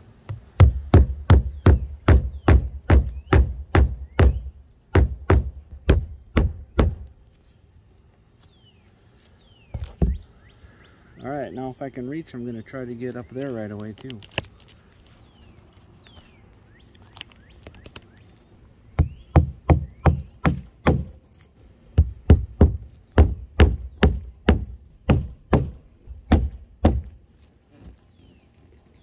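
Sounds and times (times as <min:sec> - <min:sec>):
hammer driving nails into roofing: 0:00.3 - 0:07.1, 0:19.0 - 0:21.2, 0:22.0 - 0:27.2.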